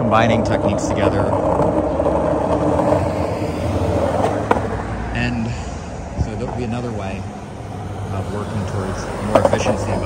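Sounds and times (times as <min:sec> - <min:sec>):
skateboard wheels rolling on asphalt: 0:00.0 - 0:10.0.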